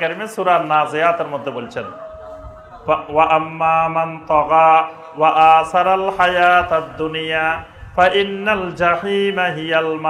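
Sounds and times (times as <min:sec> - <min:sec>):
man chanting into a microphone: 0:00.0 - 0:01.9, 0:02.8 - 0:10.0.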